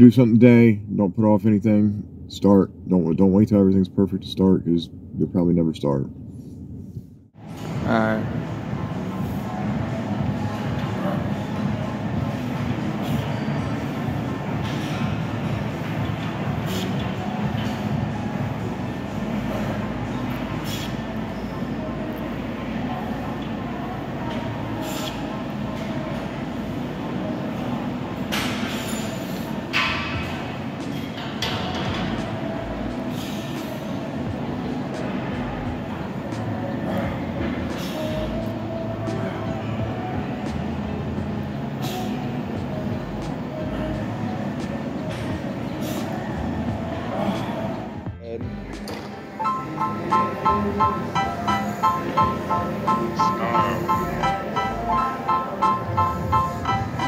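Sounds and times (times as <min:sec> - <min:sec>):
indistinct background voices: 0:48.8 - 0:57.0.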